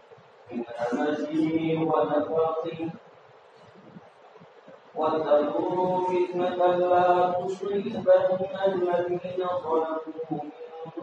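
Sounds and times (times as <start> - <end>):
man chanting verse through microphone: 0.5 - 3.0, 4.9 - 11.0.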